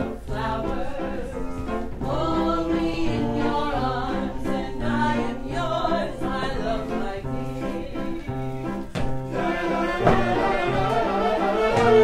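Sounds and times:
several voices singing together: 0.0s - 12.0s.

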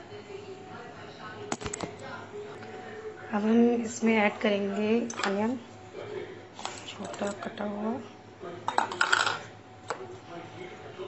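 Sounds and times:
clinks against steel bowl: 8.7s - 10.0s.

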